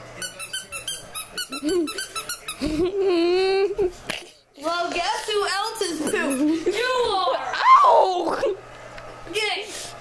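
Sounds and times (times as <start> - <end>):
squeaky toy squeaking: 0.2 - 2.6.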